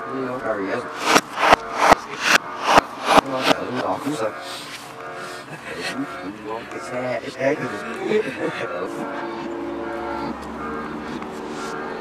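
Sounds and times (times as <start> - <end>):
people's voices: 0.0 - 12.0
sharp knocks: 1.0 - 4.1.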